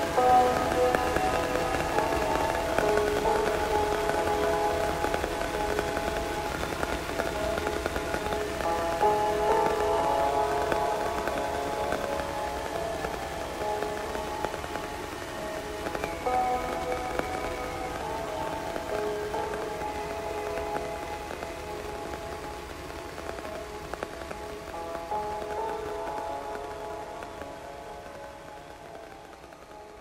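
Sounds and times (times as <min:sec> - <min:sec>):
scattered crackles: 0:00.0 - 0:30.0
steady hiss: 0:00.0 - 0:30.0.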